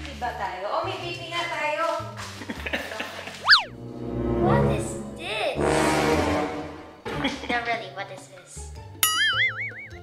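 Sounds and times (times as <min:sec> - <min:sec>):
playful background music: 0:00.0 - 0:10.0
cartoon whistle swoop: 0:03.4 - 0:03.8.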